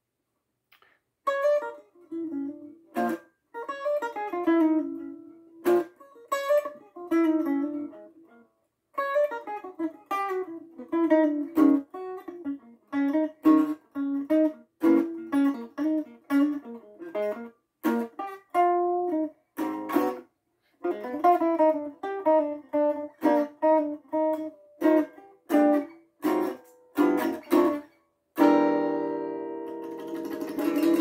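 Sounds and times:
blues guitar picking: 0:01.2 - 0:31.0.

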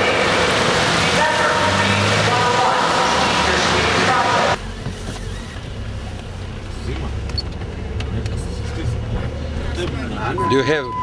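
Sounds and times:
car engine rumble from cabin: 0:00.0 - 0:11.0.

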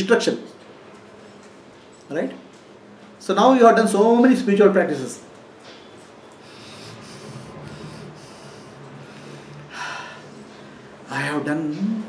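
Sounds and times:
man breathing in sharply: 0:06.4 - 0:10.7.

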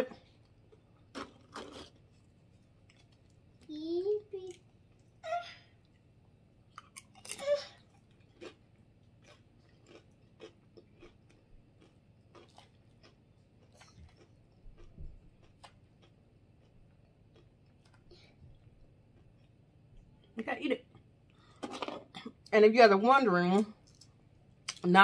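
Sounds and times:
tortilla chip bitten with crunch: 0:01.0 - 0:03.3, 0:06.8 - 0:18.1
chewing crisp crunches: 0:06.7 - 0:20.1.

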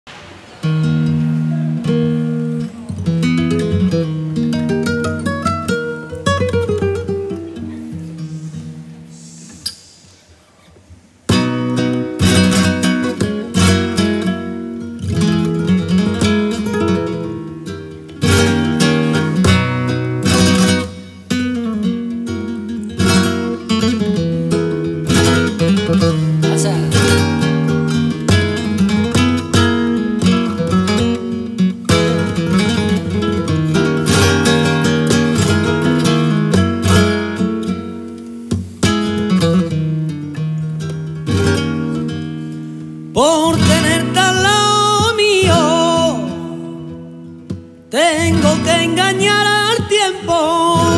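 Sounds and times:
flamenco guitar: 0:00.1 - 0:50.9.

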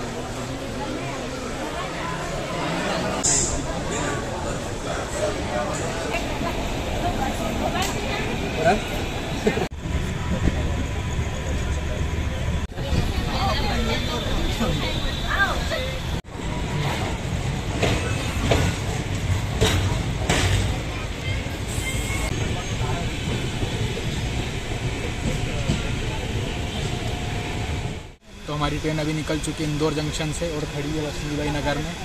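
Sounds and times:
passenger train rumbling on rails: 0:00.0 - 0:32.0
voices chattering: 0:00.0 - 0:32.0.

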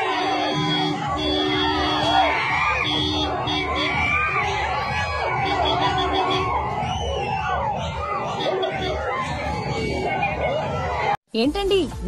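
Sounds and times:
large crowd shouting and screaming: 0:00.0 - 0:11.2.

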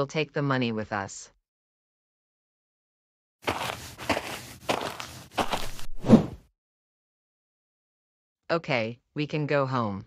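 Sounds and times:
footsteps walking: 0:03.4 - 0:06.1.

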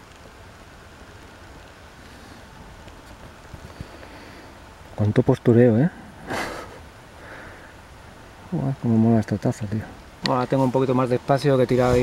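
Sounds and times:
faint outdoor background: 0:00.0 - 0:12.0
breathy puff of air: 0:06.2 - 0:07.8.

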